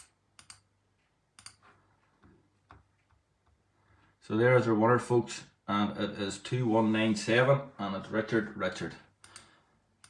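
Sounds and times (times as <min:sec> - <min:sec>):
computer keyboard clicks: 0:00.0 - 0:00.7, 0:01.4 - 0:01.6.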